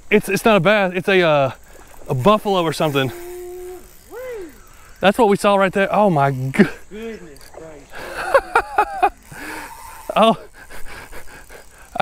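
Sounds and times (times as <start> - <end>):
faint thin steady tone: 0.0 - 12.0
man laughing: 6.5 - 7.1, 7.9 - 12.0.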